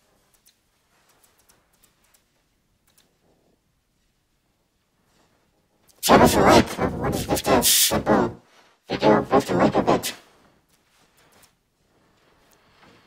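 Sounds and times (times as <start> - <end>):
person speaking loudly: 6.0 - 10.2.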